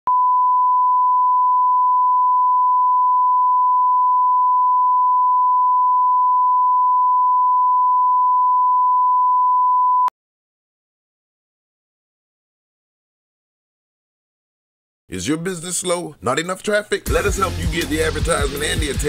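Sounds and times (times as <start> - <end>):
steady pure test tone beep: 0.1 - 10.1.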